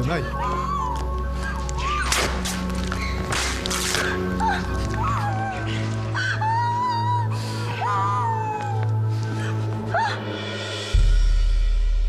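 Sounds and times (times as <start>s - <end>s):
whip lashing: 2.0s - 2.6s
woman crying in pain: 4.0s - 10.4s.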